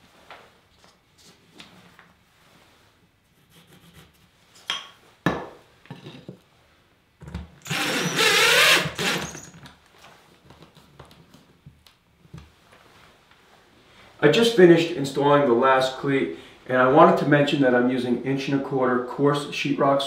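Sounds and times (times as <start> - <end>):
cordless drill driving screw: 7.6 - 9.5.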